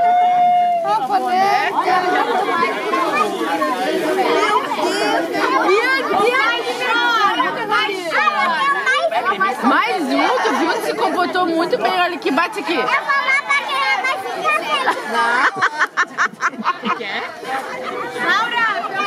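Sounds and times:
overlapping chatter of voices: 0:00.0 - 0:19.0.

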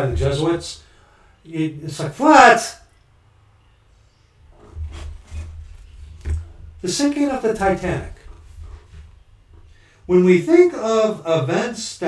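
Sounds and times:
book rubbing and rustling: 0:04.5 - 0:09.6.

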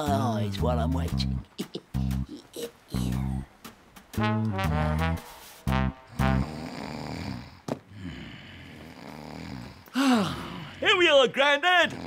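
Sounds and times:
speech: 0:00.0 - 0:01.4, 0:02.3 - 0:03.5, 0:10.8 - 0:12.0
brass-like musical sting: 0:04.2 - 0:06.5
man snoring: 0:06.2 - 0:10.8.

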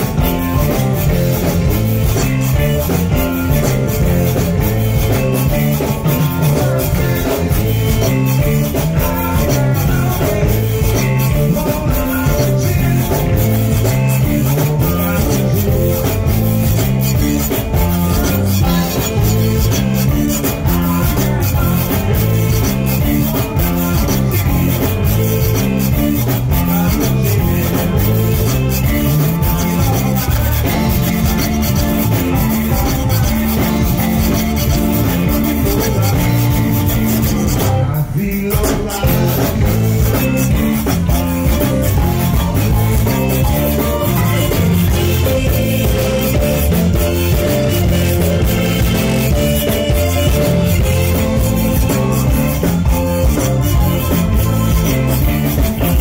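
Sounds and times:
piano accordion: 0:00.0 - 0:38.1, 0:38.7 - 0:56.0
bass: 0:00.0 - 0:56.0
drum kit: 0:00.0 - 0:56.0
electric guitar: 0:00.0 - 0:56.0
rubboards scraped in rhythm: 0:00.0 - 0:56.0.

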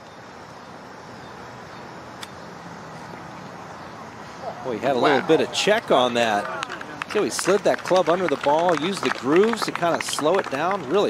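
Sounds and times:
outdoor background noise: 0:00.0 - 0:11.0.

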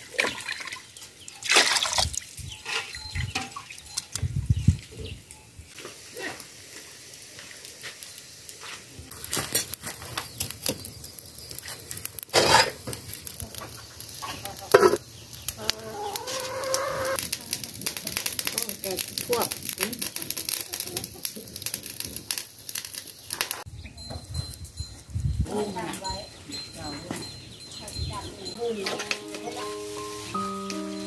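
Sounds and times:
chickens clucking: 0:13.5 - 0:17.2
rooster crowing: 0:15.6 - 0:17.2.

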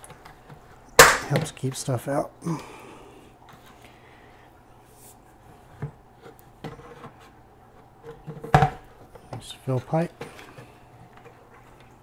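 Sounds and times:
knocks of plastic lid and pipe: 0:08.4 - 0:09.5.

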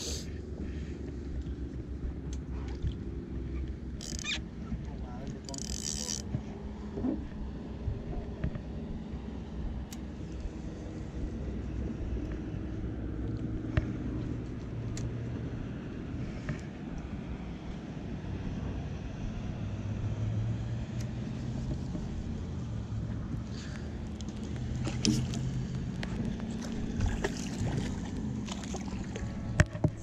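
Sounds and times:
boat engine rumble: 0:00.0 - 0:30.0.

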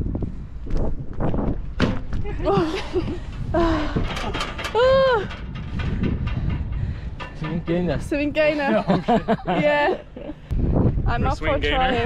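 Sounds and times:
wind on microphone: 0:00.0 - 0:09.4, 0:10.4 - 0:12.0.

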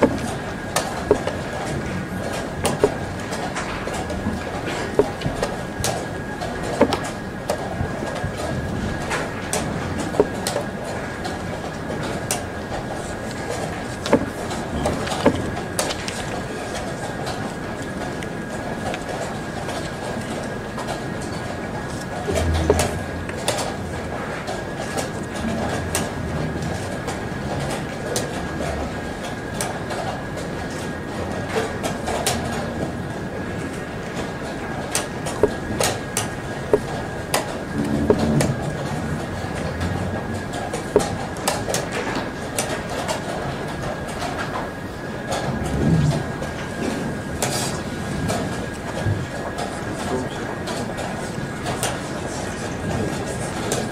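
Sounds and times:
hall ambience: 0:00.0 - 0:29.5
chess clock being pressed: 0:22.3 - 0:23.0.

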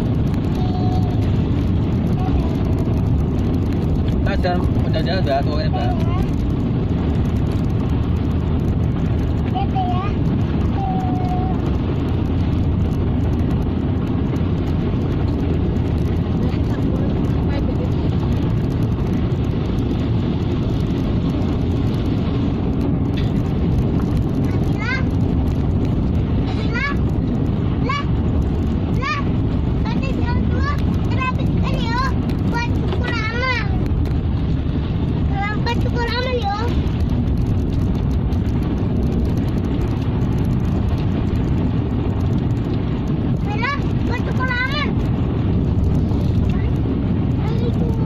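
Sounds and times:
car road and engine noise: 0:00.0 - 0:48.0.

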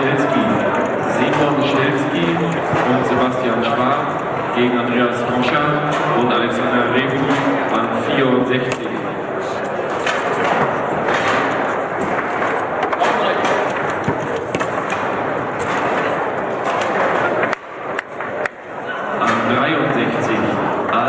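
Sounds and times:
din of voices in a hall: 0:00.0 - 0:21.0
table football ball clacking: 0:10.0 - 0:18.6.

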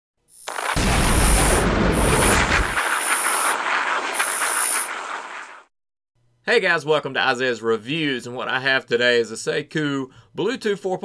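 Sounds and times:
rushing static-like noise: 0:00.5 - 0:05.7.

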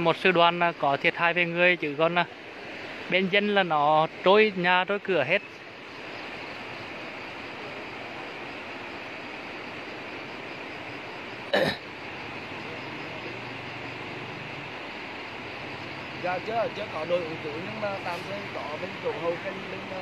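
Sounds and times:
floodwater rushing: 0:00.0 - 0:20.0.

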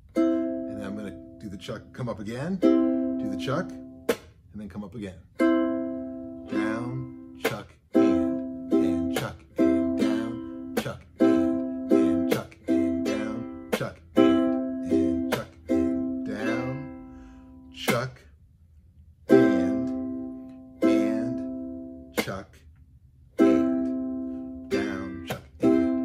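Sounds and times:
ukulele strumming: 0:00.0 - 0:04.4, 0:05.3 - 0:18.2, 0:19.2 - 0:22.4, 0:23.3 - 0:26.0.

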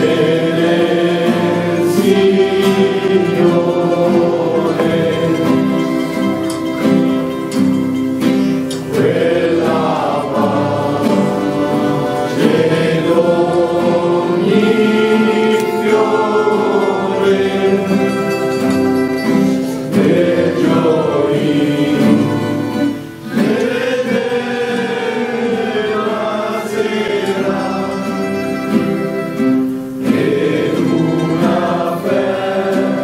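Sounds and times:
plucked acoustic guitar: 0:00.0 - 0:33.0
voices singing together: 0:00.0 - 0:33.0.

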